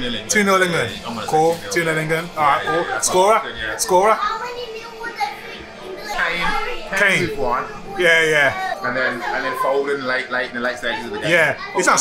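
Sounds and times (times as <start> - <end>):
children talking: 0.4 - 12.0.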